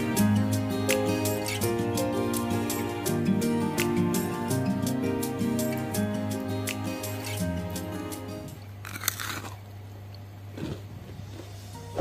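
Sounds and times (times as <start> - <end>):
soft background music: 0.0 - 9.3
crunch of chewing: 8.8 - 9.7, 10.5 - 11.5
crunchy snack being bitten: 8.8 - 9.7.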